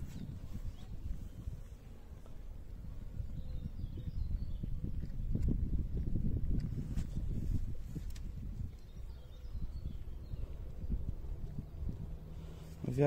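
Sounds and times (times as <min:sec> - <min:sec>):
wind buffeting microphone: 0:00.0 - 0:13.0
faint bird chirps: 0:08.7 - 0:10.9.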